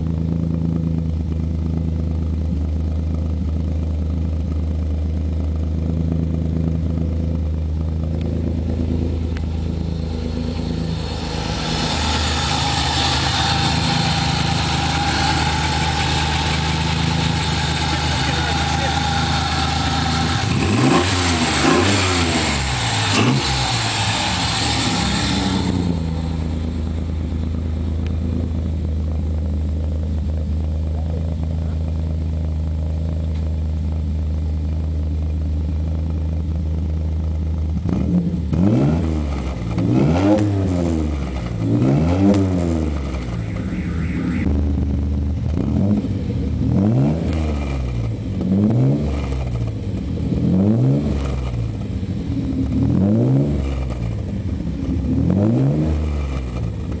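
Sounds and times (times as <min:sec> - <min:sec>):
car engine idling and revving: 0:00.0 - 0:57.0.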